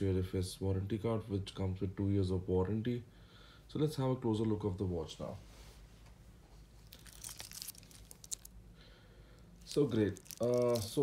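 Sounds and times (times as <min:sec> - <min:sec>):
watch bracelet crackling and clicking: 0:06.8 - 0:08.6, 0:09.6 - 0:11.0.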